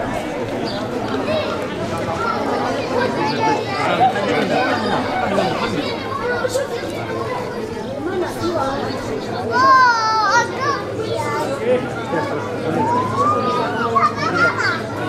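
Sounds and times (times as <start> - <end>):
crowd chattering and calling out: 0.0 - 15.0.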